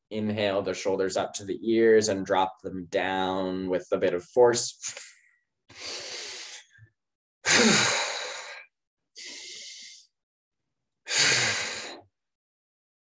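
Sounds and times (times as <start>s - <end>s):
person inhaling through mouth: 5.7s - 6.8s, 9.2s - 10.1s
person exhaling sigh: 7.5s - 8.6s.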